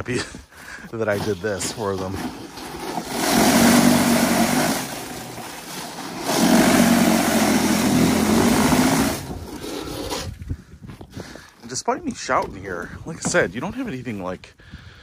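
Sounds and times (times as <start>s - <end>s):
rotor churning slushy snow: 1.0s - 10.3s
electric snow shovel motor: 2.8s - 9.4s.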